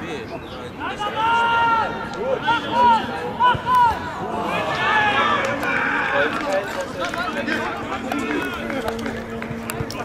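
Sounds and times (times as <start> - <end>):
voices calling and talking: 0.0 - 10.0.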